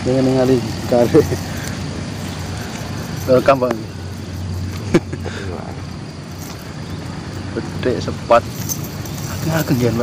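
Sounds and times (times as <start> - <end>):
faint voices: 0.0 - 10.0
steady low hum: 0.0 - 10.0.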